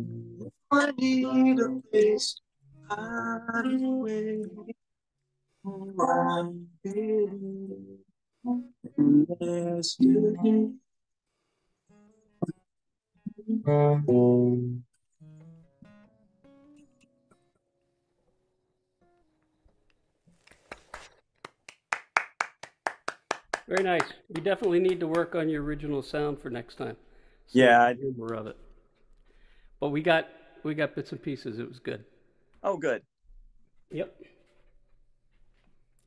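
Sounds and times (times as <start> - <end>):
man singing: 0.7 - 4.8, 5.7 - 7.9, 8.9 - 10.8
person clapping: 20.4 - 25.5.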